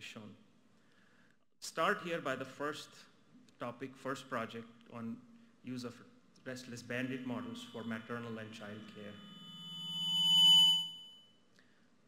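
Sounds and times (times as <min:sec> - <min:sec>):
low hum: 0:06.8 - 0:11.2
microphone feedback ringing: 0:07.0 - 0:11.4.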